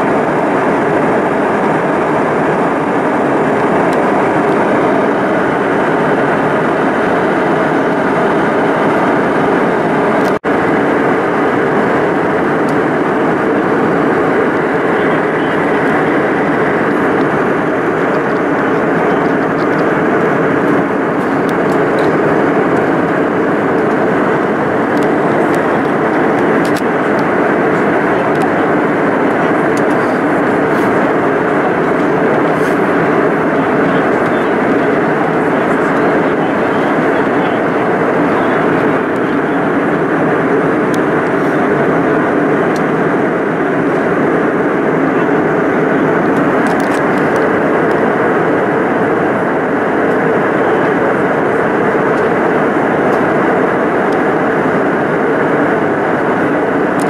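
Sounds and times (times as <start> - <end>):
jet airliner cabin noise: 0.0 - 57.0.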